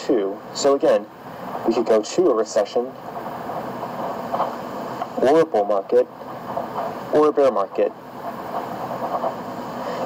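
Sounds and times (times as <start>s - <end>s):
background hum and hiss: 0.0s - 10.0s.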